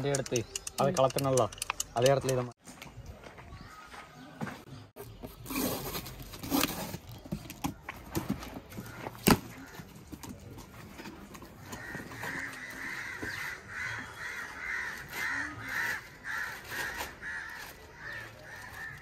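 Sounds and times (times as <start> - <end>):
crow cawing: 11.6 - 19.0.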